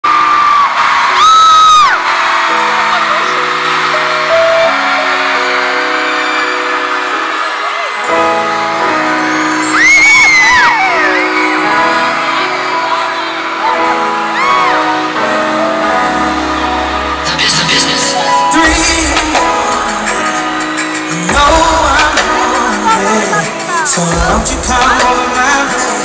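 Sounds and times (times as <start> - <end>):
fans screaming: 0.0 - 26.0
keyboard playing sustained chords: 2.0 - 26.0.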